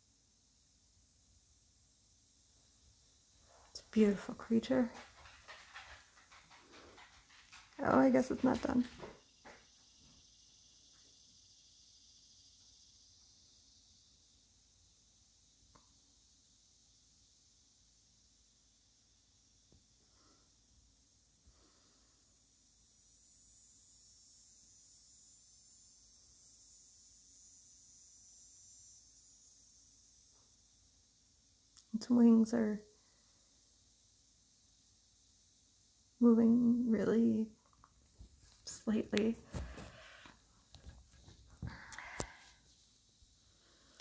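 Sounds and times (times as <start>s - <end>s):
steady high hiss: 0.0s - 44.0s
faint breathing: 21.4s - 22.4s, 39.4s - 40.5s, 41.6s - 42.8s, 43.4s - 44.0s.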